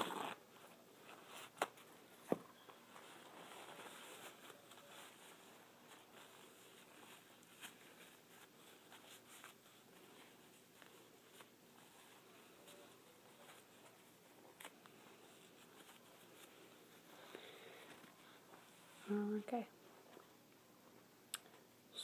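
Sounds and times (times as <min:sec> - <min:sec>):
paper towel rustling: 0:00.0 - 0:19.2.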